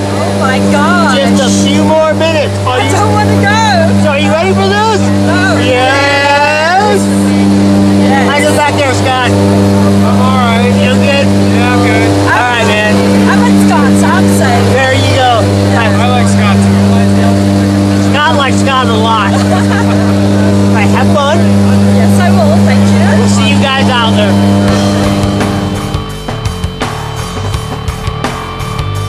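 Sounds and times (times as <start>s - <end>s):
propeller engine droning: 0.0s - 29.0s
people shouting and whooping: 4.8s - 7.3s
rock music with fast beat: 23.0s - 29.0s.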